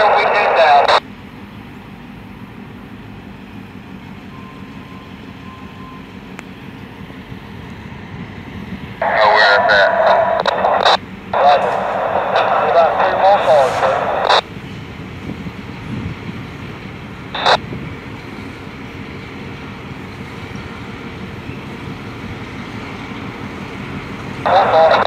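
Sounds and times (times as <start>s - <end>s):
short radio burst: 0.0s - 1.0s, 9.0s - 14.4s, 17.4s - 17.6s, 24.5s - 25.0s
two-way radio voices: 0.0s - 1.0s, 9.0s - 14.4s, 17.4s - 17.6s, 24.4s - 25.0s
locomotive diesel engine rumbling: 0.0s - 25.0s.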